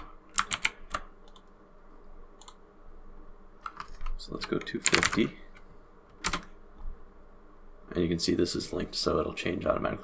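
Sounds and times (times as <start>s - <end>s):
keyboard keystrokes: 0.0s - 1.5s, 6.1s - 6.5s.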